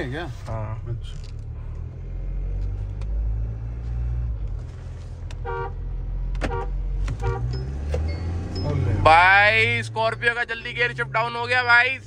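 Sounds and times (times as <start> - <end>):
engine accelerating hard: 0.0 - 12.0.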